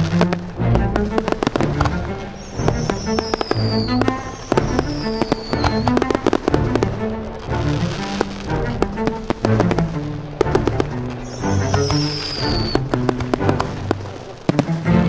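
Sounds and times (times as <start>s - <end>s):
fireworks bangs and crackling: 0.0s - 15.0s
orchestral film music: 0.0s - 15.0s
falling firework whistles: 1.2s - 6.9s, 9.3s - 14.8s.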